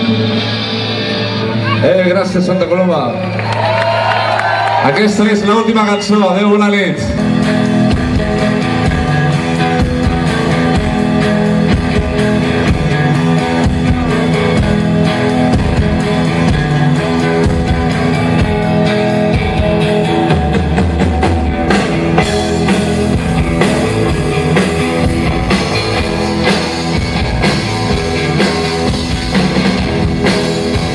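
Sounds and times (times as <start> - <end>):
bass guitar: 0.0 - 30.9
electric guitars: 0.0 - 30.9
drum kit: 7.0 - 30.9.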